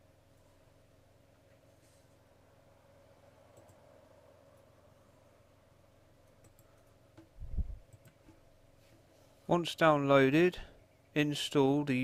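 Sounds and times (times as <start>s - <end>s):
steady low hum: 0.0s - 12.0s
faint mouse clicks: 3.5s - 3.8s, 6.2s - 7.3s, 7.9s - 8.4s.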